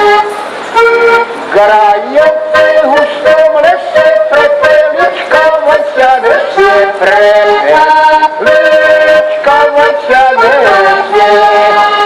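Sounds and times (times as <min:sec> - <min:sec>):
button accordion playing chords: 0:00.0 - 0:12.0
person singing: 0:01.5 - 0:12.0.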